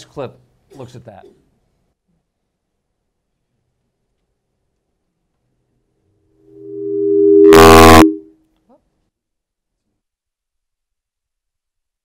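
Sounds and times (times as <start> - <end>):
steady electronic tone: 6.4 - 8.3
loud burst of harsh noise: 6.6 - 8.2.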